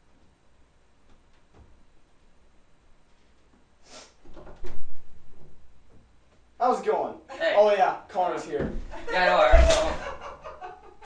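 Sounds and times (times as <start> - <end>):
door thumping and rattling: 4.3 - 5.6, 8.6 - 10.2.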